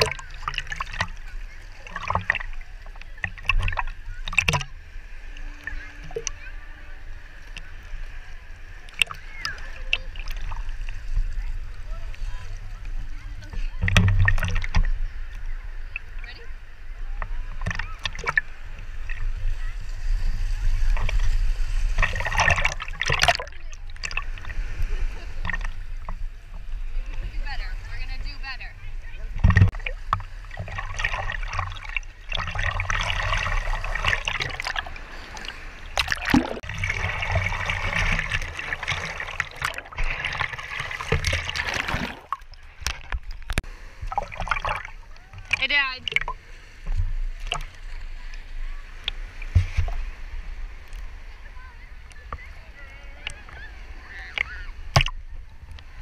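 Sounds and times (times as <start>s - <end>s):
ocean waves: 0.0s - 56.0s
water sloshing and splashing: 0.0s - 56.0s.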